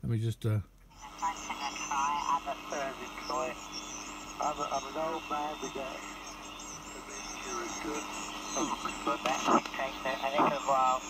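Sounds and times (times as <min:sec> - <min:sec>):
radio band hiss: 0:00.9 - 0:11.0
person talking over radio: 0:01.0 - 0:11.0.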